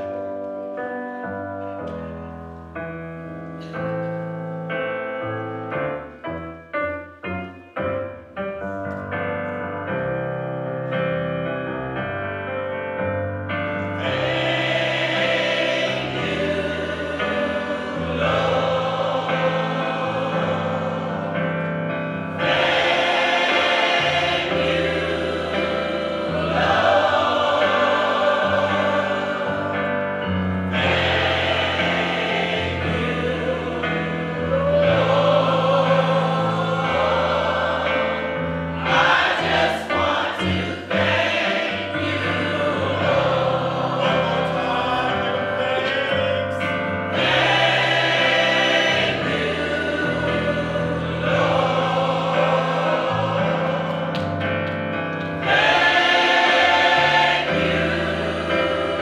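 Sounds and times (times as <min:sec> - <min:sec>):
church choir singing: 0:00.0 - 0:02.2, 0:07.9 - 0:59.0.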